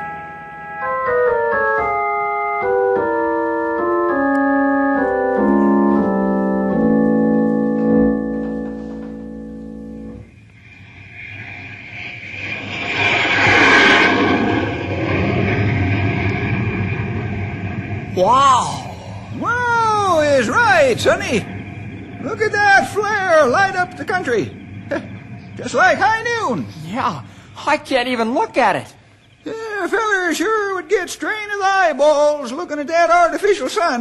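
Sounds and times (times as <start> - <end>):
organ chords: 0.0 - 10.6, 18.0 - 31.8
rushing sound effect: 9.8 - 27.9.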